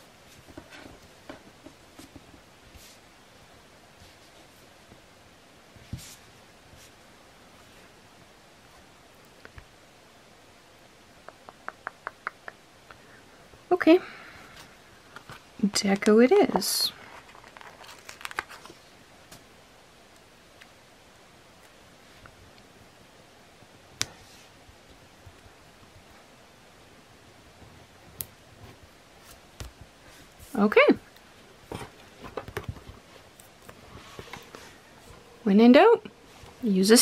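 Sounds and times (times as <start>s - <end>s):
room hiss: 0.0s - 37.0s.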